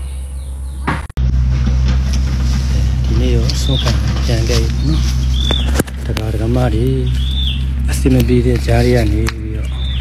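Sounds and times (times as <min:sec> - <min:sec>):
steady low rumble: 0:01.2 - 0:10.0.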